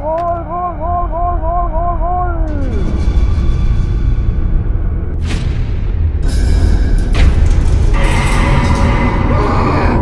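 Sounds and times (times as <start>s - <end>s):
low rumbling drone music: 0.0s - 10.0s.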